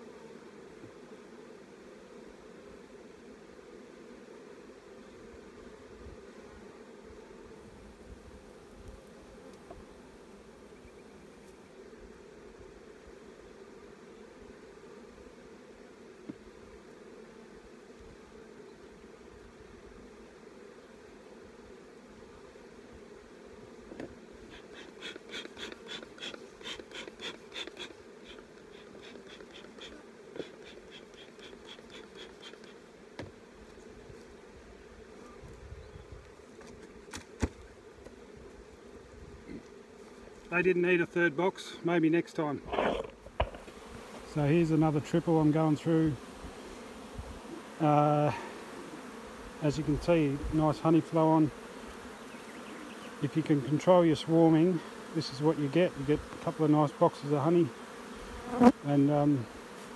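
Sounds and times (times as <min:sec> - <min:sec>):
honeybees humming: 0:00.0 - 0:59.9
light knocks of hive equipment: 0:08.8 - 0:09.9, 0:16.2 - 0:16.5, 0:23.8 - 0:28.7, 0:29.3 - 0:34.3, 0:36.2 - 0:38.6, 0:42.7 - 0:44.3
bee smoker bellows puffing: 0:23.8 - 0:33.7, 0:41.6 - 0:58.8.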